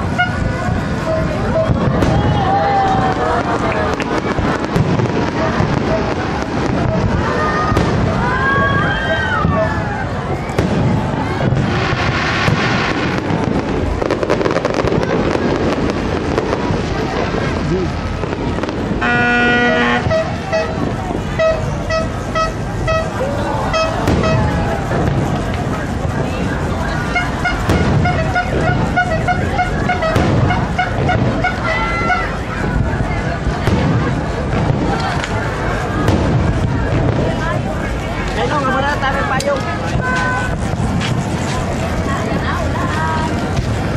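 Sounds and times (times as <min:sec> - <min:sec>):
horn tooting: 0:00.0 - 0:02.7, 0:18.9 - 0:24.6, 0:27.0 - 0:32.5
crowd chatter: 0:00.0 - 0:43.9
firework bursts: 0:00.0 - 0:43.9.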